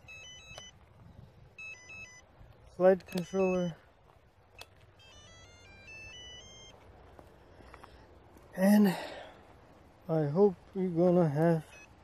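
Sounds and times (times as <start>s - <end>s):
electronic beeps from motors: 0.0s - 2.3s, 3.0s - 3.8s, 4.5s - 6.8s, 11.3s - 12.0s.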